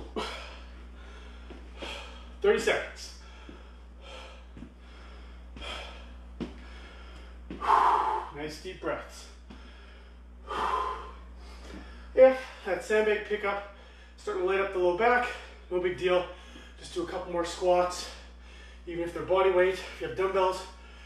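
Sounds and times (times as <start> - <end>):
man breathing hard: 0.0 - 2.4, 3.1 - 8.4, 9.3 - 12.7, 13.7 - 14.2, 16.3 - 16.8, 18.0 - 18.9, 20.7 - 21.0.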